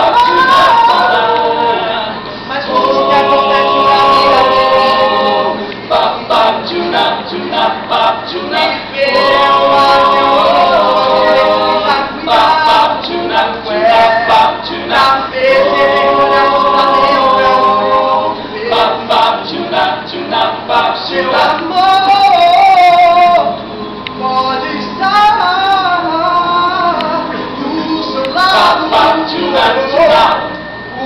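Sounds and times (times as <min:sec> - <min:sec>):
a cappella ensemble singing harmony: 0:00.0 - 0:31.0.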